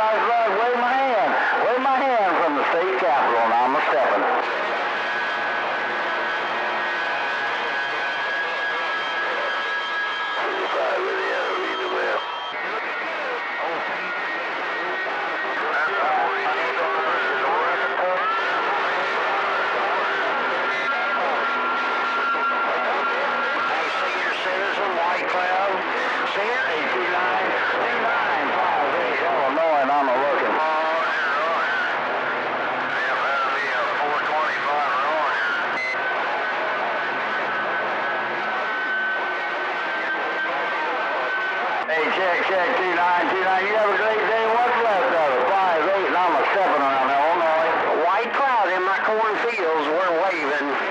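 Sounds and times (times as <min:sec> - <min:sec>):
garbled distant radio voices: 0:00.0 - 0:32.0, 0:32.8 - 0:50.9
radio static hiss: 0:00.0 - 0:50.9.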